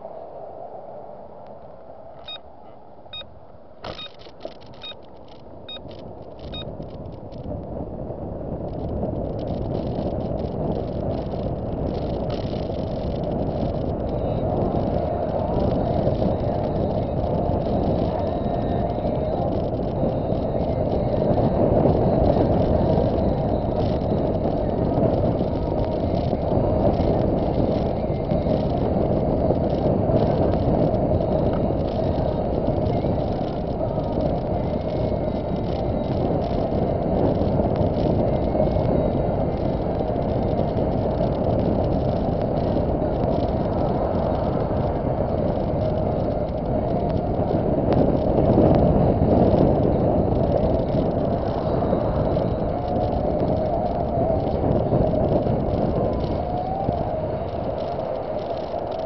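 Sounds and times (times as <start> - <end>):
car tyres and engine rumble: 0.0 - 59.0.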